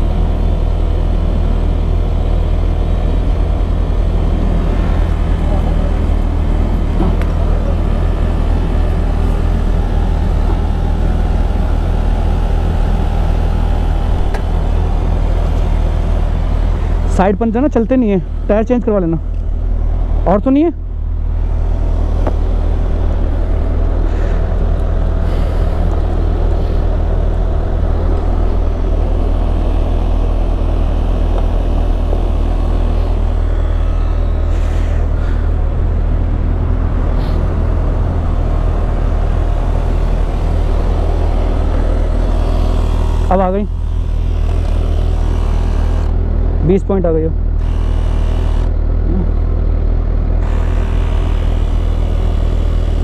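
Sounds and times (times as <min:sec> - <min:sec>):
electric air compressor running: 0:21.8 - 0:36.0, 0:37.1 - 0:46.9, 0:47.5 - 0:49.3, 0:50.4 - 0:53.0.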